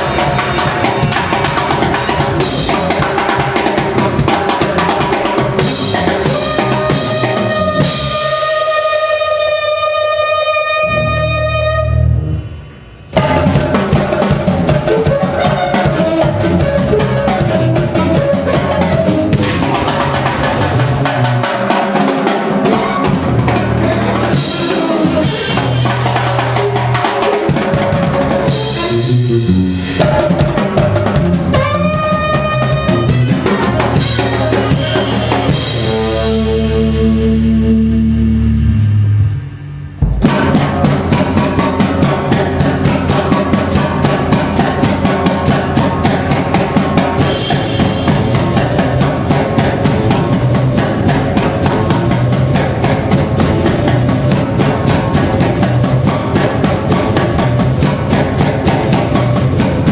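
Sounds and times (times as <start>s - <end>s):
electric bass: 0.0s - 9.4s, 10.2s - 59.9s
saxophone: 0.0s - 21.1s, 22.0s - 57.2s
drums and percussion: 0.0s - 59.9s
held low bass notes: 28.3s - 46.5s.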